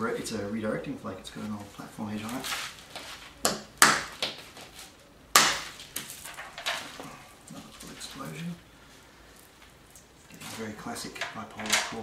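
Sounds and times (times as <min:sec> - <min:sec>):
stone striking flint: 0:05.3 - 0:07.0.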